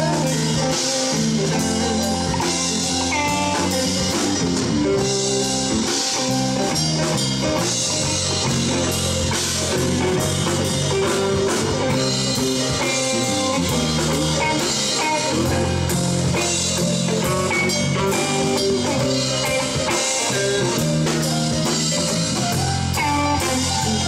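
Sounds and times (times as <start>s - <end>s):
live rock band playing: 0.0s - 24.0s
steady drum beat: 0.0s - 24.0s.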